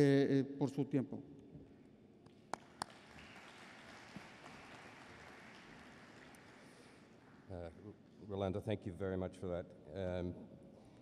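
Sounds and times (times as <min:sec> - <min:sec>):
faint hall noise: 0:00.0 - 0:11.0.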